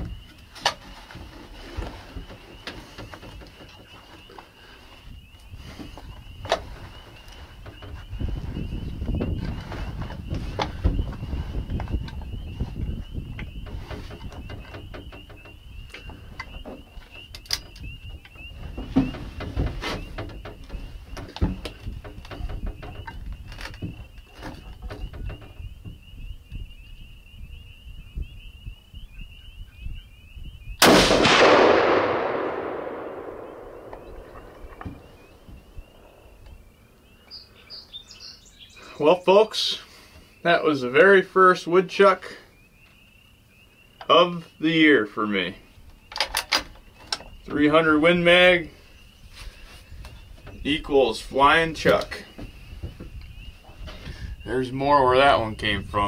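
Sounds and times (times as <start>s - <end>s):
rifle shot with echo: 30.8s - 35.4s.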